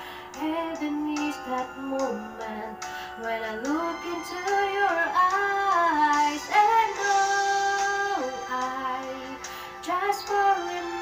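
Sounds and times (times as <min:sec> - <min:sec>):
woman singing a slow ballad: 0:00.0 - 0:11.0.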